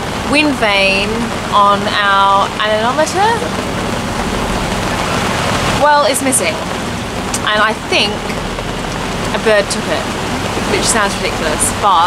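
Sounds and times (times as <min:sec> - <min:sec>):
rain on canvas cover: 0:00.0 - 0:12.0.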